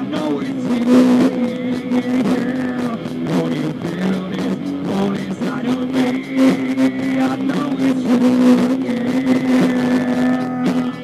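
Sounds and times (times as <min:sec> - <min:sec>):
distorted electric guitar note: 0:00.0 - 0:11.0
drums: 0:00.0 - 0:11.0.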